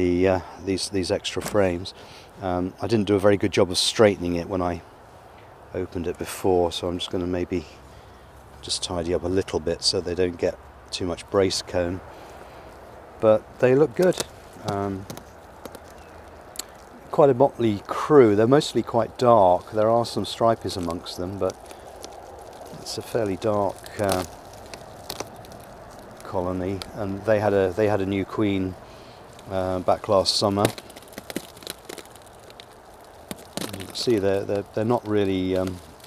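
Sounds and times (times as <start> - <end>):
low steady hiss: 0.0 - 36.0
foil sheet clicks and crinkles: 13.6 - 36.0.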